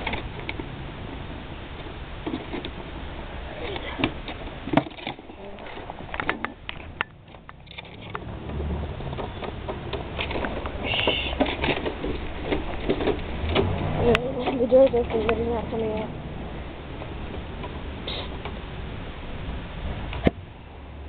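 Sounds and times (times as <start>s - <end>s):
wooden knocks and clicks: 4.0s - 15.4s
low rumble: 5.3s - 21.0s.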